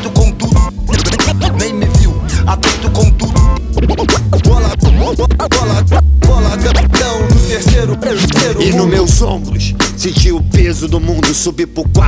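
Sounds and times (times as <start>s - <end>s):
hip-hop beat: 0.0s - 12.0s
deep bass line: 0.1s - 12.0s
turntable scratching: 0.9s - 1.9s, 3.8s - 6.0s.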